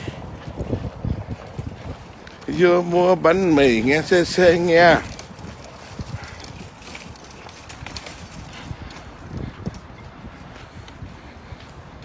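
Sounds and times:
footsteps on concrete: 0.0 - 12.0
stroller wheels rumbling: 0.0 - 12.0.

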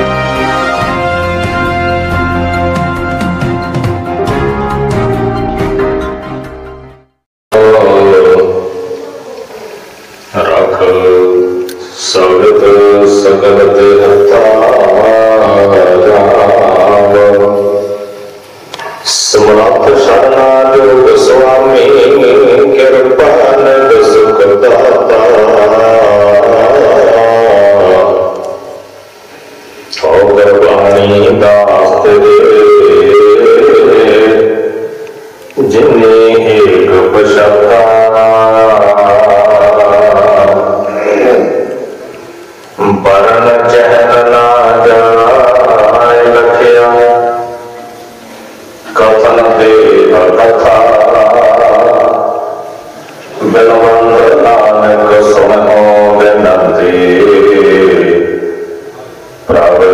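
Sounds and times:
devotional music long held note: 0.0 - 18.6, 19.2 - 59.9
man chanting into a microphone: 7.5 - 29.1, 29.9 - 48.1, 48.8 - 59.9.

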